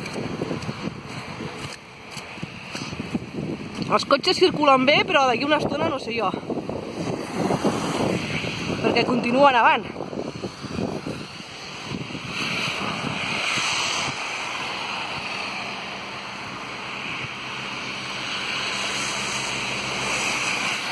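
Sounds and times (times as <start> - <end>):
car tyres hissing on wet road: 0.0 - 3.8, 6.5 - 8.9, 10.0 - 20.9.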